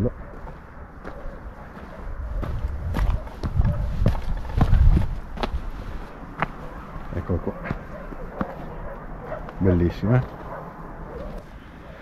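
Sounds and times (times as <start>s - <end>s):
footsteps crunching on stony path: 0.0s - 11.8s.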